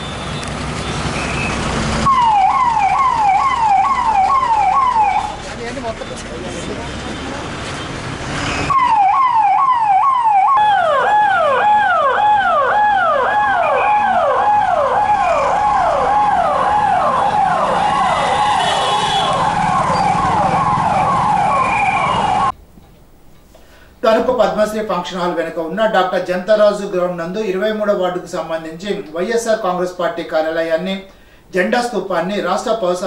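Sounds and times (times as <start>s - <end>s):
second siren tone: 1.2s - 5.4s, 8.6s - 22.5s
electronic siren falling sweep: 2.0s - 5.4s, 8.7s - 22.5s.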